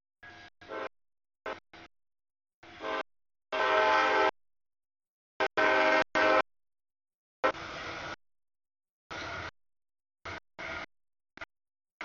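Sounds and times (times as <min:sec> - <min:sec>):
locomotive air horn blasts: 0:00.2 - 0:01.9, 0:02.6 - 0:04.4, 0:05.4 - 0:06.5, 0:07.4 - 0:08.2.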